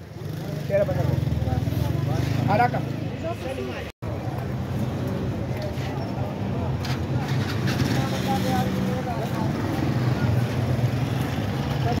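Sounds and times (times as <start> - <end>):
motorcycle engines rumbling: 0.0 - 12.0
voices of passers-by: 0.0 - 12.0.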